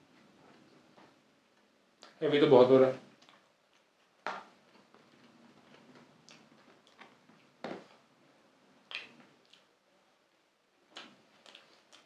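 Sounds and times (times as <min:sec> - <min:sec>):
chewing soft food: 0:03.1 - 0:08.0, 0:08.8 - 0:09.8, 0:10.8 - 0:12.0
wet mouth smacks: 0:08.9 - 0:09.7, 0:10.9 - 0:12.0.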